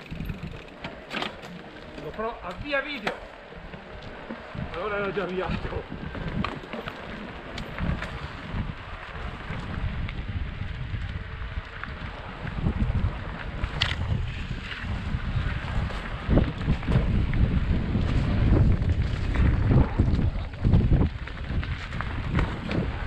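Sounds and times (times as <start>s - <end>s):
bike knocking over trail: 0.0s - 23.0s
wind buffeting microphone: 0.0s - 23.0s.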